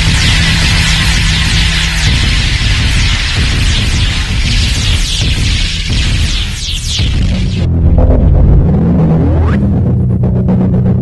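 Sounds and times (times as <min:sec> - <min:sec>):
electronic hum: 0:00.0 - 0:11.0
falling synth sweeps: 0:00.0 - 0:11.0.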